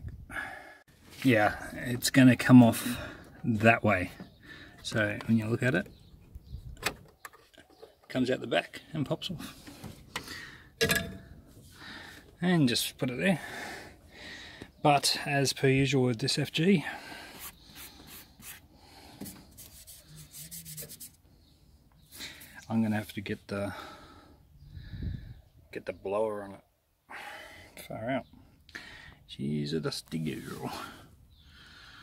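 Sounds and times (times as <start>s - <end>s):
fingertip rubbing on panel: 19.2s - 21.2s.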